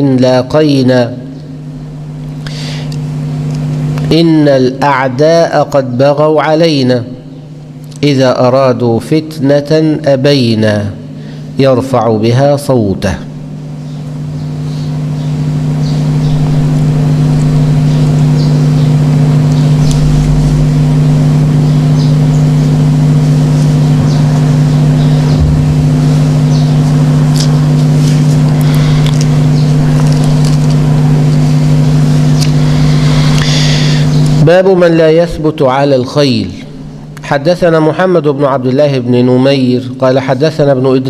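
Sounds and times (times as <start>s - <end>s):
loud electrical mains hum: 0.0s - 41.0s.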